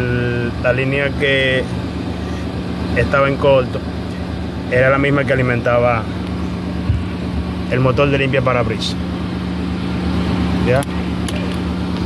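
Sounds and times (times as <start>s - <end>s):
car running with steady hum: 0.0s - 12.0s.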